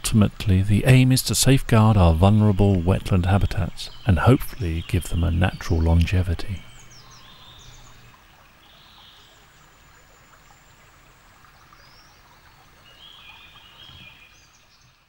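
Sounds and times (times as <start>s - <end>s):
stream water trickling: 0.0s - 15.0s.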